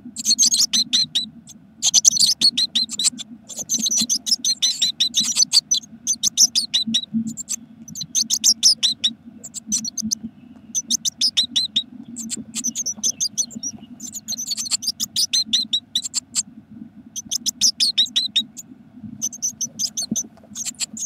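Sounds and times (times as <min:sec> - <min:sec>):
nestlings cheeping: 0:00.2 - 0:16.4, 0:17.2 - 0:18.6, 0:19.2 - 0:21.0.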